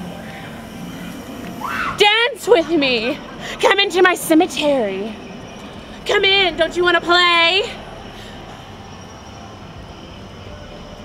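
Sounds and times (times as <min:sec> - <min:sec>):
faint high hum: 0:00.0 - 0:11.0
low rumbling drone: 0:00.0 - 0:11.0.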